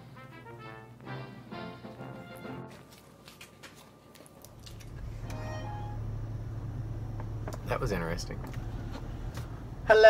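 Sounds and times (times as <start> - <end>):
sustained musical notes: 0.0 - 2.9, 4.8 - 7.4
low rumble of car cabin: 4.5 - 9.9.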